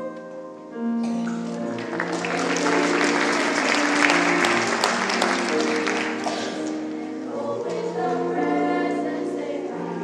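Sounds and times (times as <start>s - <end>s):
audience applause: 1.2s - 7.0s
choir singing sustained chords: 1.4s - 10.0s.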